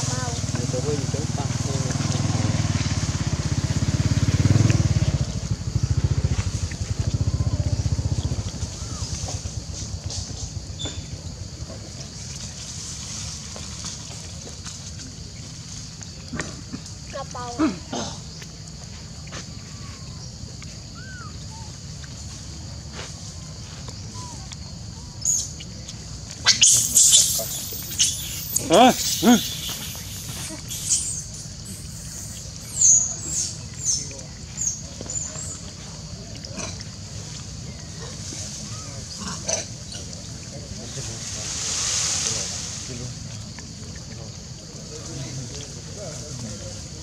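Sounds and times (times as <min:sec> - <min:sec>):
steady low rumble: 0:03.0 - 0:12.9
macaque low falling call: 0:07.4 - 0:09.6, 0:19.6 - 0:20.3, 0:20.9 - 0:21.8, 0:26.4 - 0:34.0
macaques high-pitched calls: 0:08.6 - 0:09.4, 0:19.6 - 0:20.3, 0:20.9 - 0:21.8, 0:26.4 - 0:34.0
steady background hiss: 0:08.6 - 0:36.3, 0:37.0 - 0:47.0.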